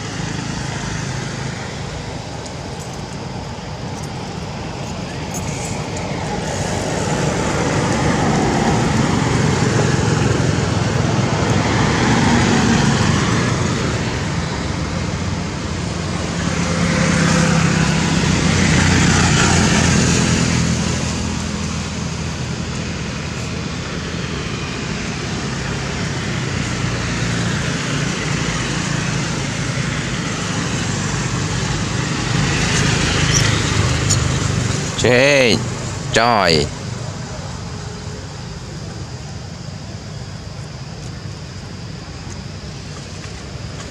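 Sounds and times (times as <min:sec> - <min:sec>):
road traffic: 0:00.0 - 0:43.9.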